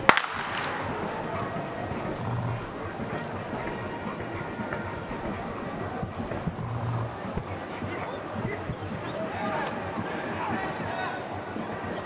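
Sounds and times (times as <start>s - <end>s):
blank pistol shot with echo: 0.0s - 1.2s
outdoor background noise: 0.0s - 12.0s.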